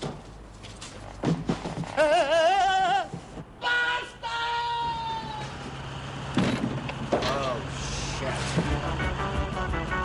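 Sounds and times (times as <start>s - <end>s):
street traffic rumbling: 0.0s - 10.0s
long cry: 2.0s - 5.6s.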